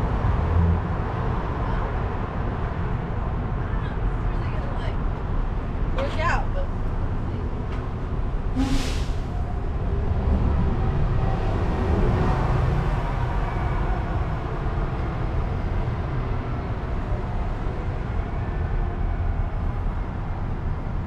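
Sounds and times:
street traffic rumble: 0.0s - 21.0s.

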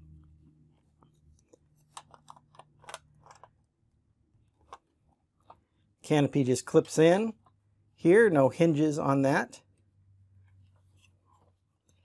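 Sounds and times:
plastic clicks and rattles: 1.4s - 3.7s.

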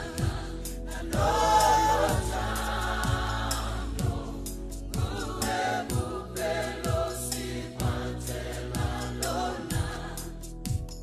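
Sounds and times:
kick drum: 0.0s - 0.5s, 3.0s - 4.3s, 5.0s - 5.3s, 5.9s - 6.2s, 6.9s - 7.2s, 7.8s - 8.1s, 8.8s - 9.0s, 9.7s - 11.0s
choir singing gospel: 0.0s - 11.0s.

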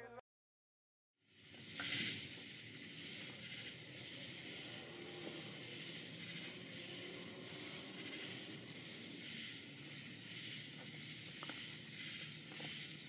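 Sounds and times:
steady hiss: 1.3s - 13.0s
high-pitched whine: 1.4s - 12.9s.

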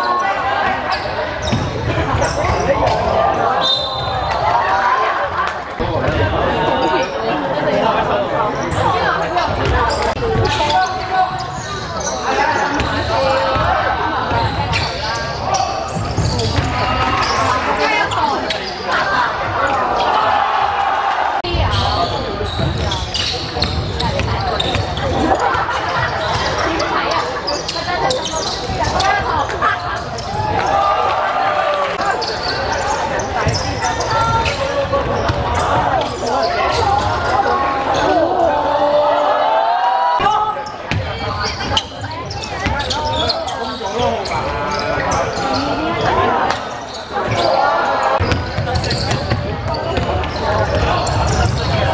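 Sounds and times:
players calling out: 0.0s - 51.9s.

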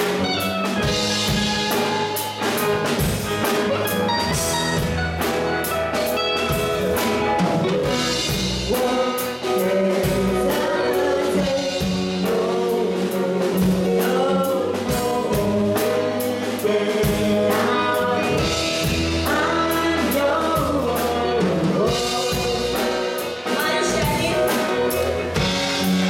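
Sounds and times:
bass guitar: 0.0s - 26.0s
drum kit beat: 0.0s - 26.0s
electric guitar: 0.0s - 26.0s
woman singing: 8.1s - 26.0s.

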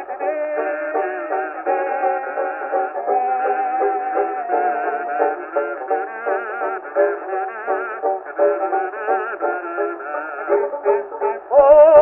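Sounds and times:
kazoos buzzing a melody: 0.0s - 11.4s
plucked banjo notes: 0.0s - 12.0s.

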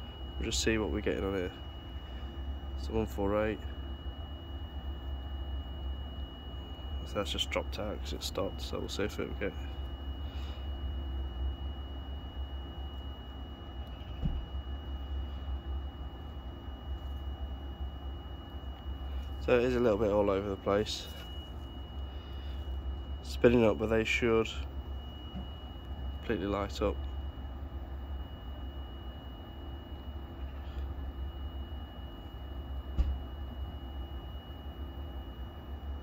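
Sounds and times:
air conditioning unit low rumble: 0.0s - 36.0s
high whine: 0.0s - 36.0s.

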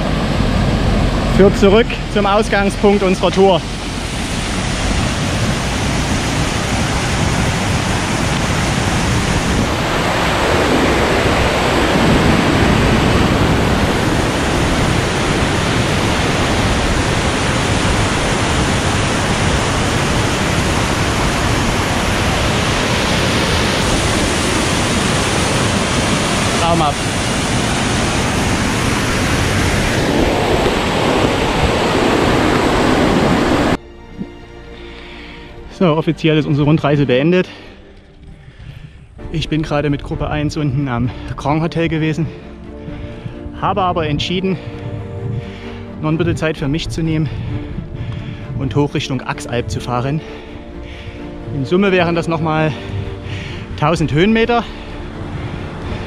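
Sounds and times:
waterfall rushing: 0.0s - 33.8s, 42.3s - 56.0s.

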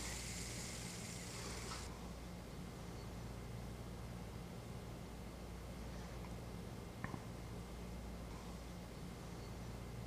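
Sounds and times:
fidget spinner whirring: 0.0s - 1.9s.

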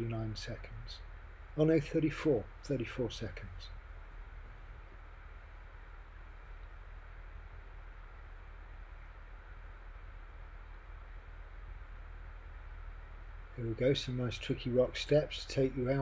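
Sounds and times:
constant low hum: 0.0s - 16.0s
low hiss: 0.0s - 16.0s.

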